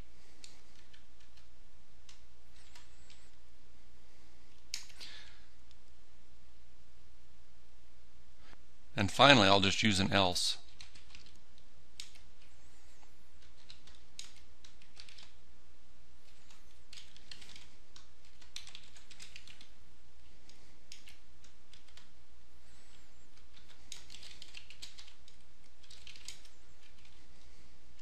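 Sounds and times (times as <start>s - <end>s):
steady low hum: 0.0s - 28.0s
computer keyboard typing: 0.4s - 3.3s, 10.6s - 11.4s, 12.0s - 12.5s, 13.4s - 15.4s, 16.2s - 19.8s, 20.5s - 22.1s, 22.9s - 27.2s.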